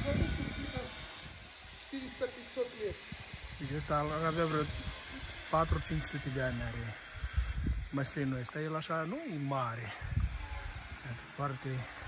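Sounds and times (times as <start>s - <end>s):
wind rumbling on microphone: 0.0s - 8.5s, 9.8s - 12.0s.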